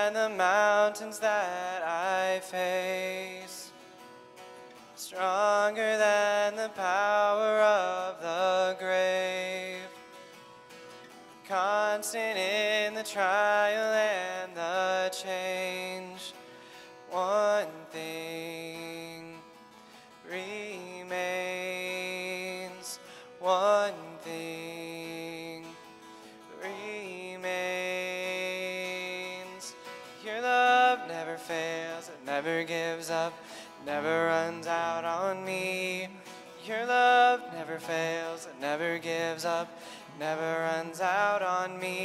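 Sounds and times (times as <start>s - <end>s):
acoustic guitar: 0.0s - 42.0s
man singing worship song: 0.0s - 42.0s.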